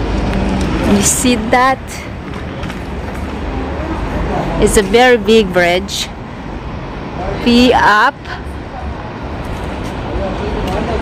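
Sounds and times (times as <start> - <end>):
faint voices of passers-by: 0.0 - 11.0
road traffic rumble: 0.0 - 11.0.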